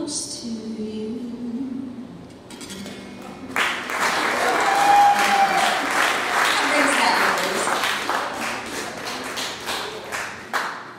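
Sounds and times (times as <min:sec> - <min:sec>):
audience applause: 0:03.5 - 0:10.9.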